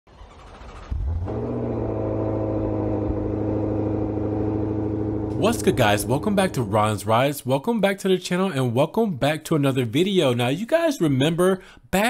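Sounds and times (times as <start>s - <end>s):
deep droning rumble: 0.2s - 7.0s.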